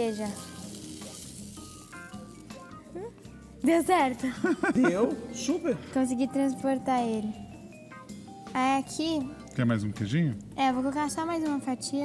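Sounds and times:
frying pan sizzling: 0:00.0 - 0:05.8
soft background music: 0:00.0 - 0:12.0.

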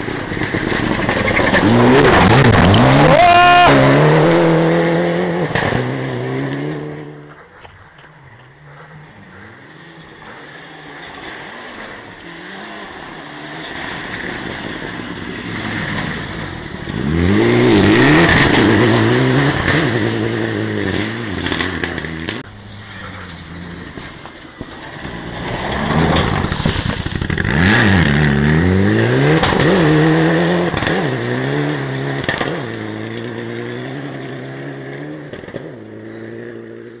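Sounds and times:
rally car engines revving: 0:00.0 - 0:37.0.

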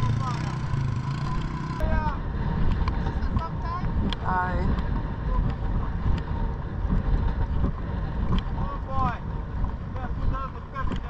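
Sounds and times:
wind buffeting microphone: 0:00.0 - 0:11.0
hooves on stony track: 0:02.6 - 0:11.0.

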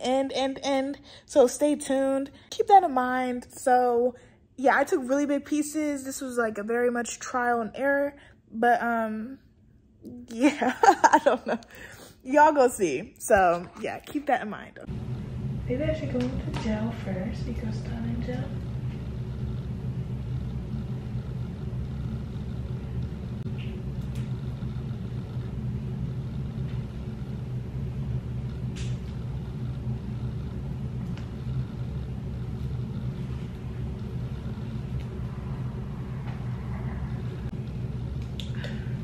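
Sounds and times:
low rumbling hum: 0:12.8 - 0:39.0.

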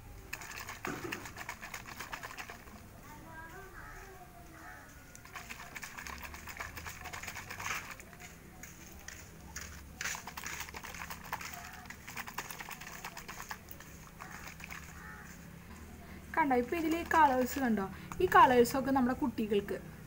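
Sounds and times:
plastic bottle rattle shaking: 0:00.3 - 0:02.9, 0:05.2 - 0:15.4, 0:16.5 - 0:18.5.

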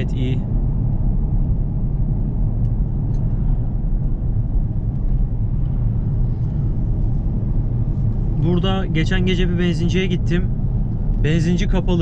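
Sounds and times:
engine and road noise in car cabin: 0:00.0 - 0:12.0.

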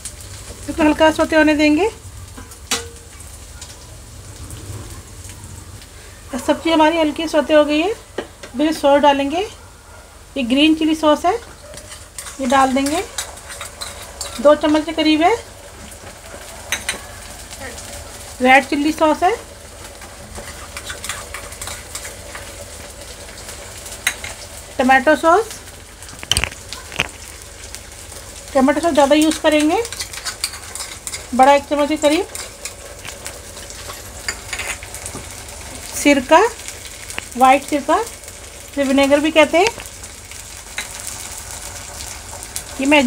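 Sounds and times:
vegetables sizzling in hot oil: 0:00.0 - 0:09.6, 0:10.2 - 0:43.0.

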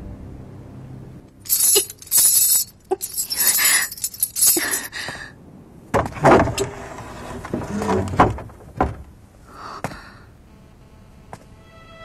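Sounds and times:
metal chain rattling: 0:01.4 - 0:05.0.

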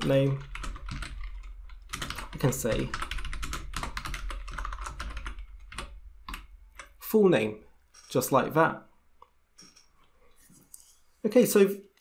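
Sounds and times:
typing on computer keyboard: 0:00.0 - 0:07.0.

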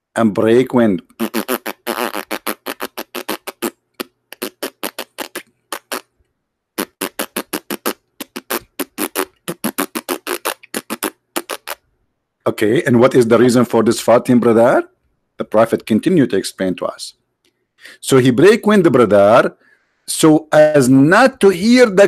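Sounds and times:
fart sound effect sputtering pops: 0:01.2 - 0:06.1, 0:06.8 - 0:11.8.

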